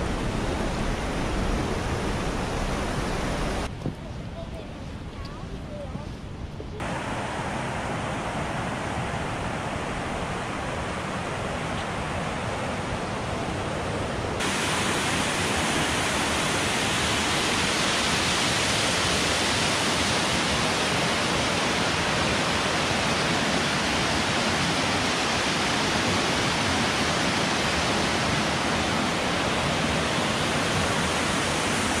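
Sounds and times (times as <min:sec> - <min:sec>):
rushing creek and waterfall: 0:00.0 - 0:03.7, 0:06.8 - 0:32.0.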